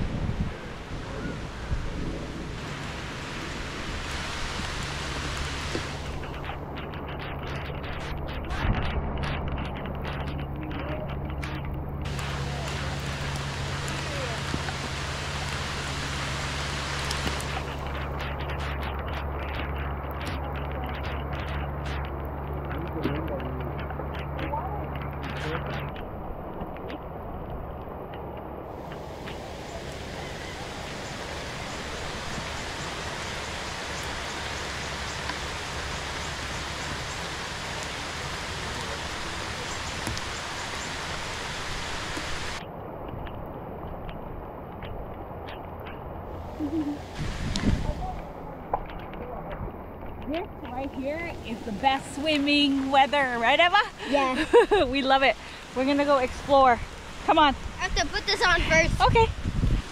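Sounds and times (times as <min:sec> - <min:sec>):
low steady hum: 0:00.0 - 0:59.9
rain: 0:00.0 - 0:59.9
surf: 0:00.0 - 0:59.9.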